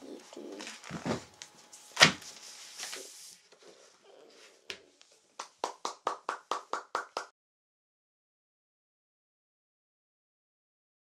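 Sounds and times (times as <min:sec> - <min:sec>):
person clapping hands: 0:05.4 - 0:07.3.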